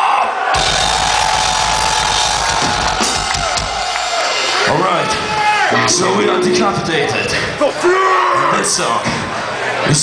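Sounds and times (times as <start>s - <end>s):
death metal band playing: 0.6s - 8.2s.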